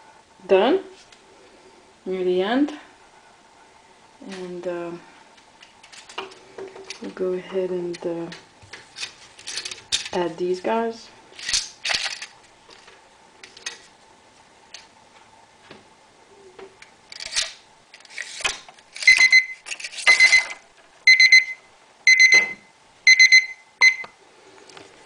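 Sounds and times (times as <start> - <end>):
plastic parts rattling: 5.8 - 7.0, 8.7 - 10.2, 11.4 - 13.9, 17.1 - 20.6
kitchen timer beeping: 19.1 - 20.5, 21.1 - 24.1.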